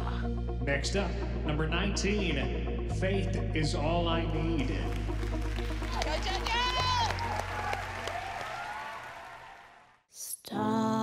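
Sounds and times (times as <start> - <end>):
background music: 0.0 - 11.0
audience applause: 4.9 - 10.0.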